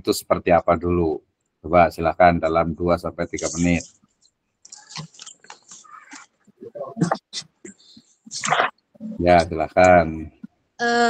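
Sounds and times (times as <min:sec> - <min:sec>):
faint speech over video call: 0:00.0 - 0:03.9, 0:04.7 - 0:11.0.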